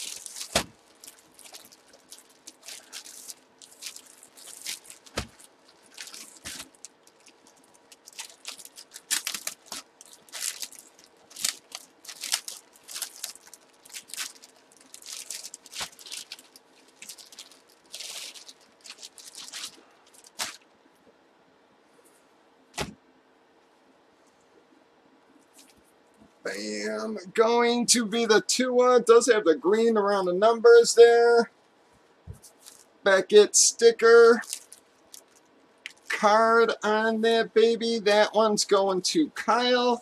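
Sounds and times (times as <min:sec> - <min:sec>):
plastic bags crinkling: 0:00.0 - 0:20.6, 0:32.4 - 0:32.9, 0:34.4 - 0:36.1.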